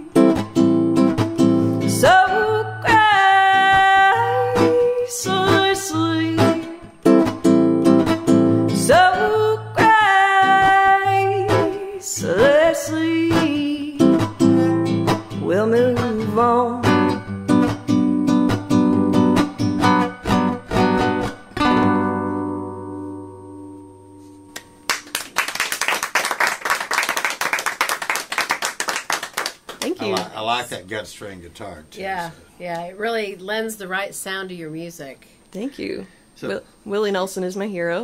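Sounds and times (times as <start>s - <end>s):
classical guitar strummed and picked: 0.0s - 2.1s, 2.7s - 24.9s.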